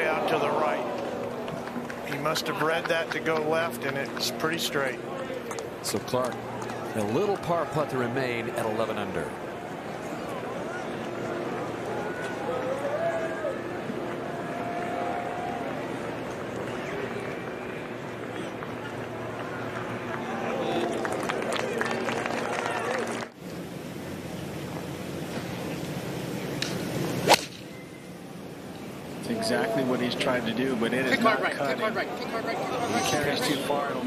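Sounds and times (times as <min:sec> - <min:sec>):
crowd murmur: 0:00.0 - 0:23.4, 0:28.2 - 0:34.0
golf club striking ball: 0:26.6 - 0:27.6.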